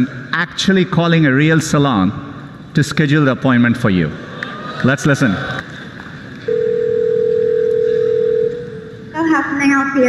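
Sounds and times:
telephone ringback tone: 0:06.5 - 0:08.9.

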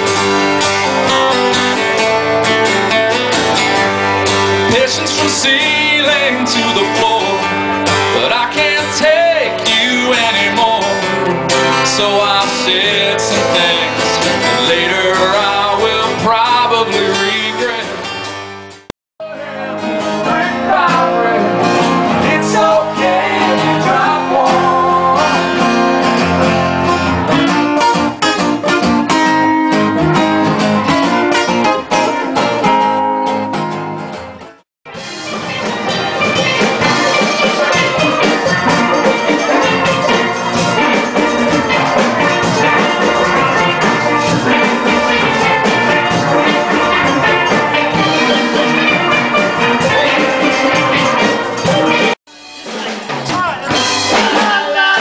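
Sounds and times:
steel drum band playing: 0:00.0 - 0:18.6, 0:19.4 - 0:55.0
acoustic guitars strumming: 0:00.0 - 0:55.0
voices singing: 0:04.5 - 0:18.0, 0:19.2 - 0:27.2, 0:35.3 - 0:55.0.

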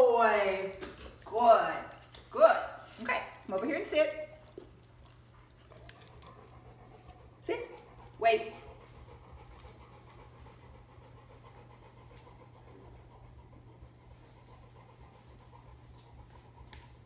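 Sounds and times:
dog panting faintly: 0:00.2 - 0:17.0.

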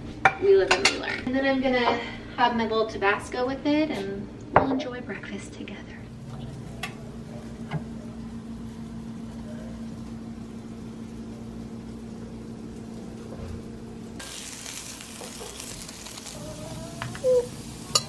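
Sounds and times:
low electric hum: 0:00.0 - 0:18.0
food sizzling in a frying pan: 0:14.2 - 0:18.0.

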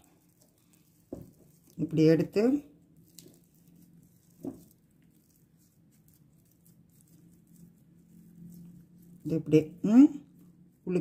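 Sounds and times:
faint low hum: 0:00.0 - 0:11.0
hands squelching sticky dough: 0:00.0 - 0:11.0.

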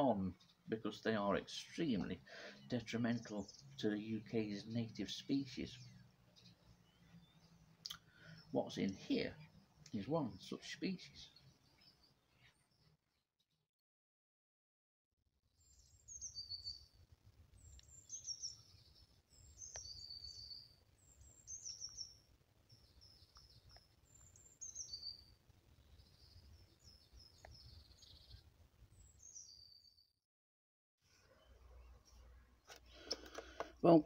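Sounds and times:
songbird singing: 0:00.0 - 0:13.2, 0:15.5 - 0:30.1, 0:31.2 - 0:34.0.

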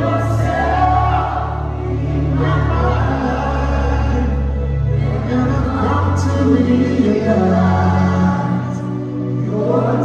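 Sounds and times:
gospel choir singing: 0:00.0 - 0:10.0
low bass: 0:00.0 - 0:10.0.

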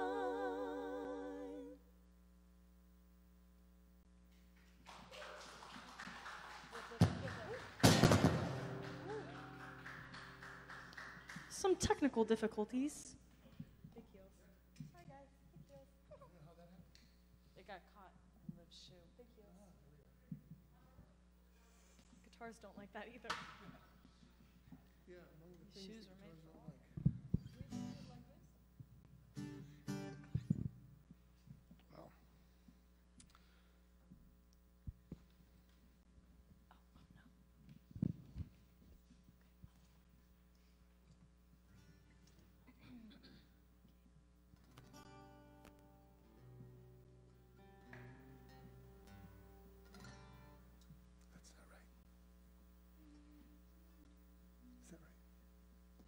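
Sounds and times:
knocks on acoustic guitar: 0:07.8 - 0:08.8
acoustic guitar chord strummed: 0:07.8 - 0:11.4, 0:29.4 - 0:30.5, 0:44.9 - 0:50.8.

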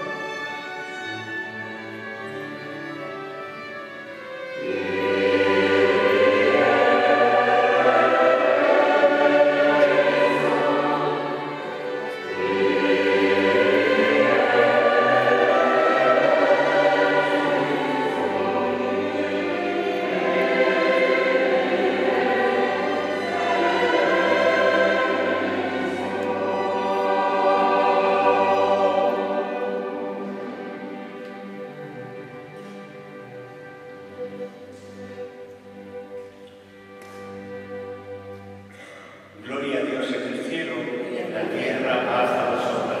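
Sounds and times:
choir singing with instruments: 0:00.0 - 0:43.0.

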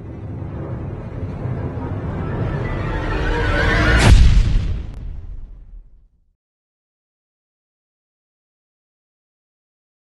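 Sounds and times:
low rumbling noise swell: 0:00.0 - 0:06.1.

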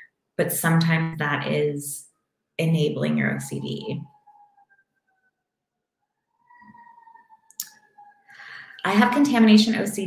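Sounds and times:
faint breath: 0:08.3 - 0:08.8.

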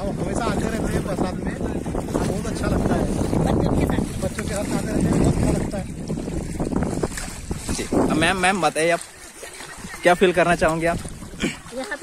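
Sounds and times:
rushing floodwater: 0:00.0 - 0:12.0
wind buffeting microphone: 0:00.0 - 0:12.0.

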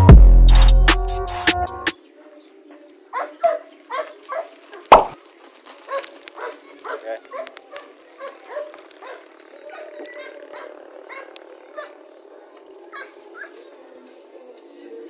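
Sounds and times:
dog barking and yipping: 0:03.1 - 0:04.9, 0:05.9 - 0:12.0, 0:12.9 - 0:13.6
sharp knock: 0:04.9 - 0:05.2.

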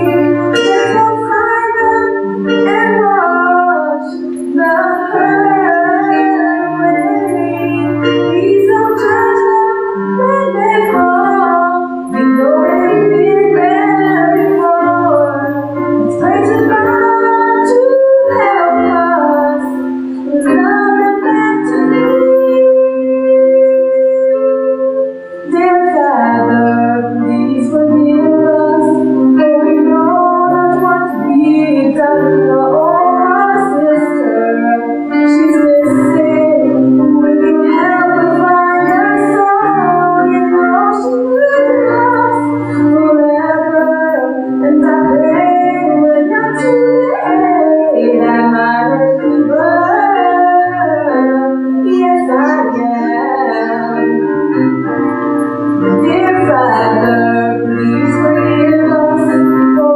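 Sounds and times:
held accompaniment chords: 0:00.0 - 0:59.9
woman singing gospel solo: 0:00.0 - 0:59.9.

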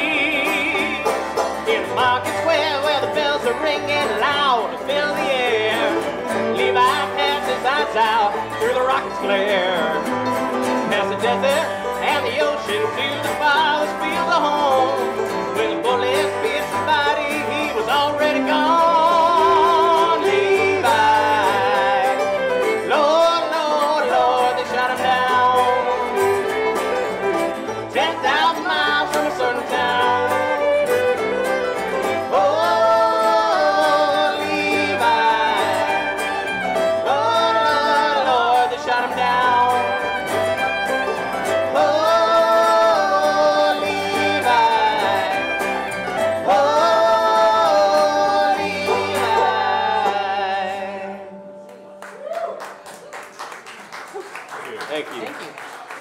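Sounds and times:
fiddle melody: 0:00.0 - 0:52.0
banjo: 0:00.0 - 0:52.1
bass guitar: 0:00.0 - 0:52.5
guitar: 0:00.0 - 0:56.0.

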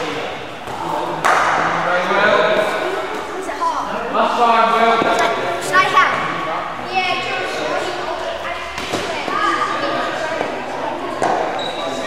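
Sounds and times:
voices echoing in a hall: 0:00.0 - 0:12.0.

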